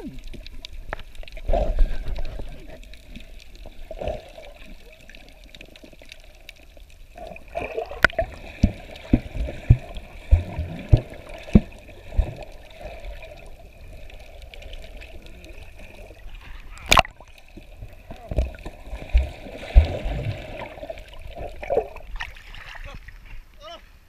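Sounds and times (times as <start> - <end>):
underwater water gurgling: 0.0 - 24.0.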